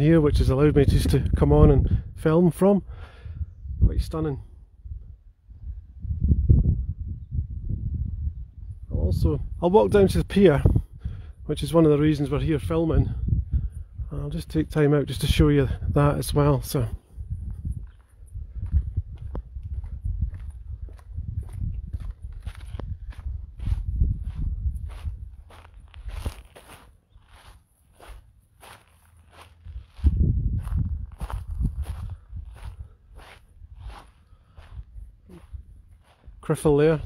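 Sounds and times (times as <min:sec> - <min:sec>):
wind rumbling on microphone: 0:00.0 - 0:37.0
footsteps on gravel: 0:17.8 - 0:37.0.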